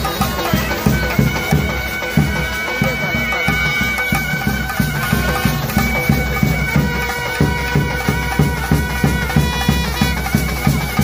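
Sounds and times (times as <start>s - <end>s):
drums beating: 0.0s - 11.0s.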